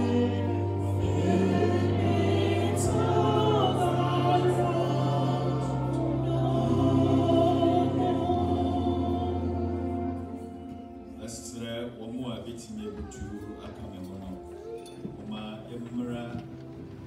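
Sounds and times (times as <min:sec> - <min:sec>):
choir singing a hymn: 0:00.0 - 0:11.1.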